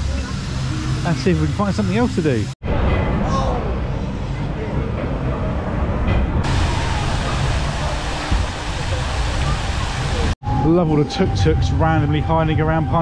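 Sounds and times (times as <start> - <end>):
low rumbling noise: 0.0 - 13.0.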